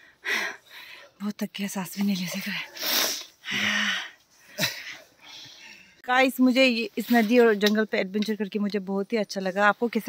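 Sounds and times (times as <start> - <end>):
faint breathing: 0.0 - 1.2, 2.6 - 6.0.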